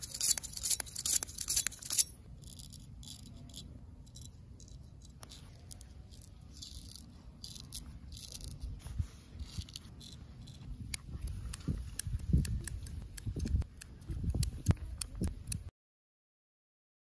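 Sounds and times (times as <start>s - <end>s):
scissors snipping: 0.0s - 3.6s, 9.4s - 15.7s
straight razor scraping stubble: 0.0s - 15.7s.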